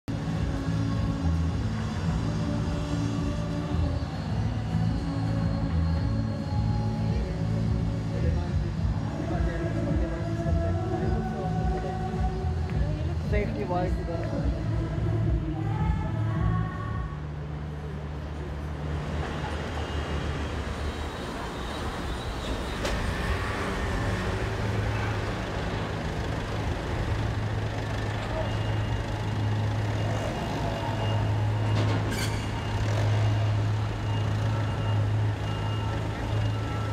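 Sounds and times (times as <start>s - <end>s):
outdoor background noise: 0.1s - 36.9s.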